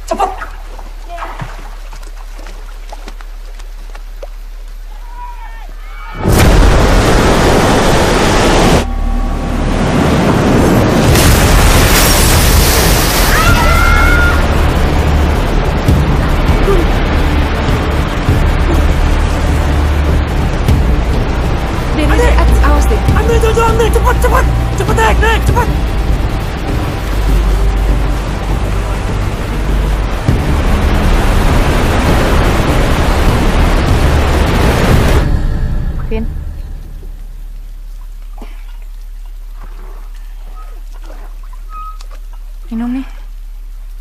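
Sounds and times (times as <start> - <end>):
dramatic film score: 0.0 - 43.6
floodwater rushing: 0.0 - 44.0
low hum: 5.8 - 44.0.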